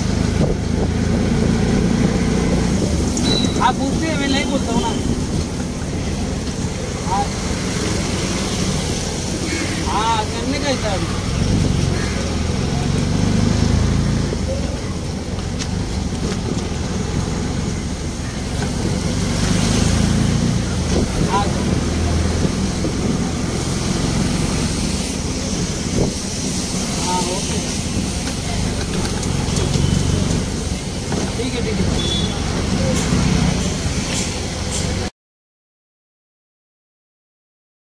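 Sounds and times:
vehicle engine drone: 0.0 - 35.1
people's voices: 2.7 - 18.8, 20.1 - 35.1.

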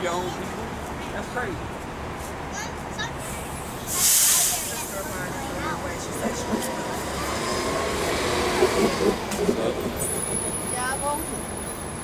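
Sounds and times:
street traffic noise: 0.0 - 12.0
bus pulling away: 3.0 - 12.0.

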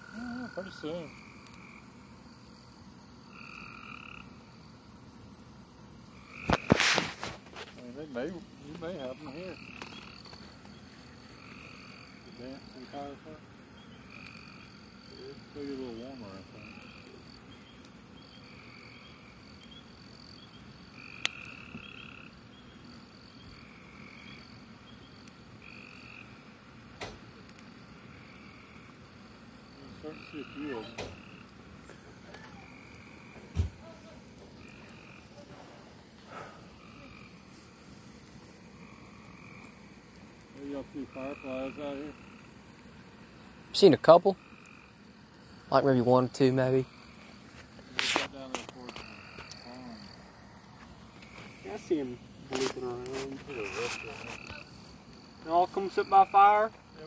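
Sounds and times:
wood fire popping: 0.0 - 4.6, 5.2 - 57.0
faint high-pitched hiss: 0.0 - 57.0
frogs trilling: 0.0 - 57.0.

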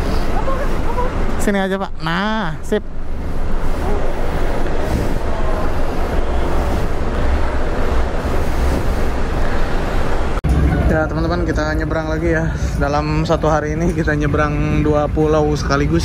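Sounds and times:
low engine rumble: 0.0 - 16.0
wash of noise: 0.0 - 16.0.

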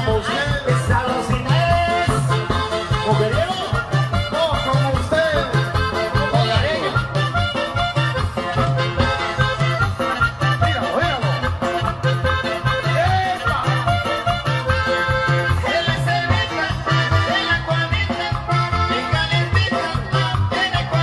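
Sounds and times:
dance music through loudspeakers: 0.0 - 21.0.

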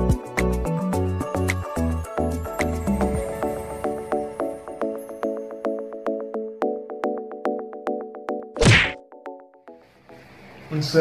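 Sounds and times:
background music with ticking beat: 0.0 - 3.2
swoosh and thud sound effect: 8.6 - 9.0.

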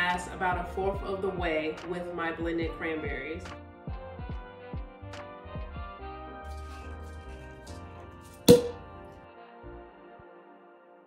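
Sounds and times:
background music: 0.0 - 11.0
cork popping: 8.4 - 9.0.

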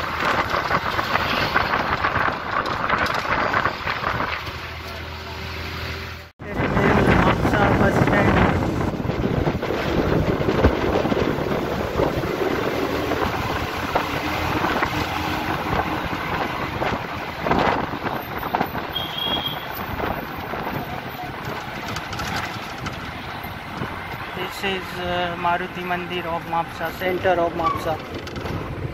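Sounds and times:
bus engine: 0.0 - 28.9
road noise: 0.0 - 28.9.

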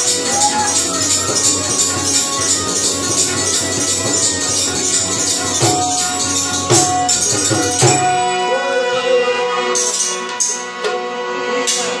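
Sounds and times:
electronic keyboard chords: 0.0 - 10.0
bright metallic jingles: 0.4 - 8.6.

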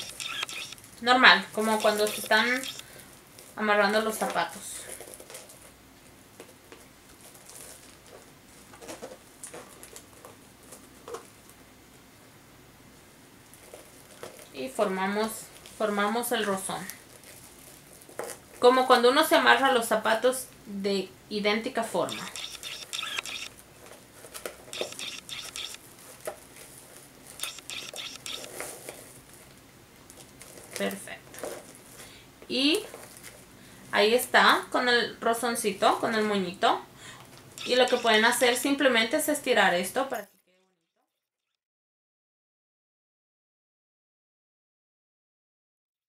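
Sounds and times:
ribbon rustling and crinkling: 0.8 - 11.6, 13.4 - 19.0, 23.6 - 33.6.

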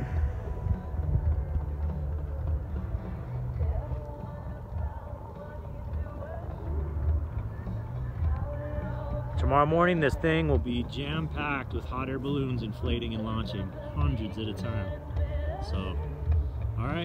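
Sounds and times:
wind buffeting microphone: 0.0 - 6.4.

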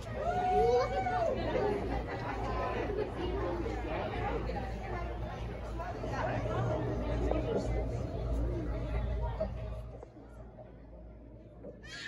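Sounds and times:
indistinct chatter: 0.0 - 12.0
steady low hum: 1.8 - 11.7.

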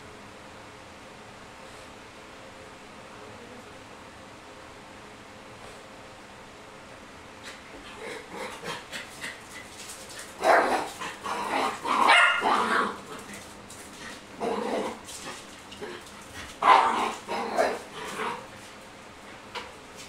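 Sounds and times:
dog barking: 11.9 - 13.0, 16.6 - 17.8.

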